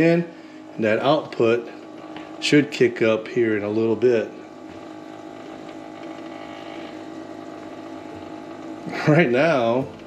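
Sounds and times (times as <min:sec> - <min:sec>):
coffee maker humming: 0:00.0 - 0:10.0.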